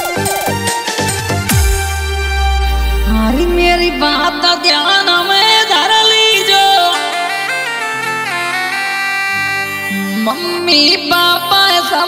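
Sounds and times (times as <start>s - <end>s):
reedy wind instrument melody: 0.0s - 4.6s, 6.6s - 10.8s
held low drone: 1.5s - 4.6s.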